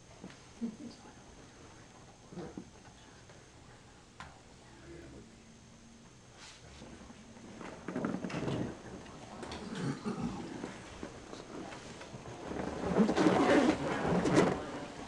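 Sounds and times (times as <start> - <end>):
handling noise on microphone: 10.6 - 15.0.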